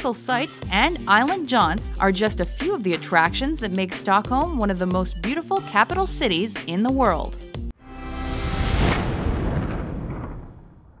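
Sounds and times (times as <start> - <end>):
whoosh and boom rumble: 8.0 - 11.0.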